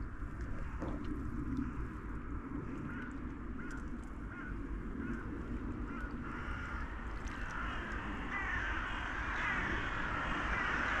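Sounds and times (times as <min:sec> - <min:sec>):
flock of waterbirds calling: 0:02.6 - 0:11.0.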